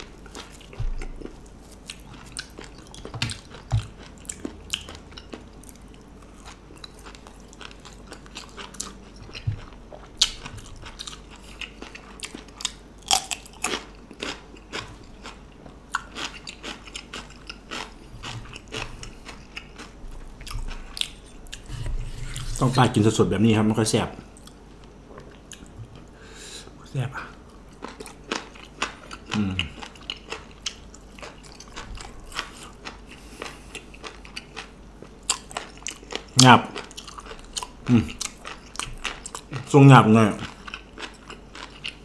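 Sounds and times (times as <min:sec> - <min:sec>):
person chewing crunchy food: 0:00.0 - 0:22.9, 0:24.3 - 0:42.0.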